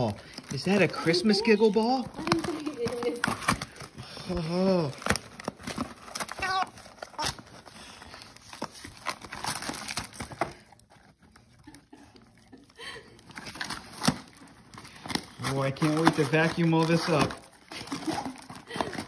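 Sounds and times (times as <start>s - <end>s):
dog tearing wrapping paper: 0.0s - 19.0s.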